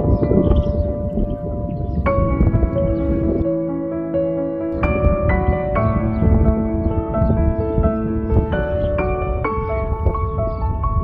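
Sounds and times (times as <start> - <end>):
low rumbling noise: 0.0 - 11.0.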